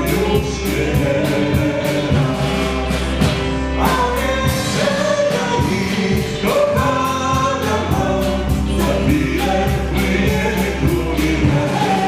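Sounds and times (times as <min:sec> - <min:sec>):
drum kit with cymbals: 0:00.0 - 0:12.0
electric guitar: 0:00.0 - 0:12.0.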